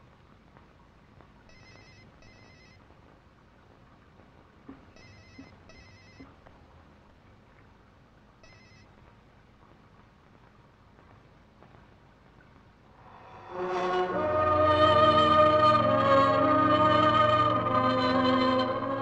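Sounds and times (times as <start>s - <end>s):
mobile phone ringing: 1.5s - 2.8s, 5.0s - 6.3s, 8.4s - 8.8s.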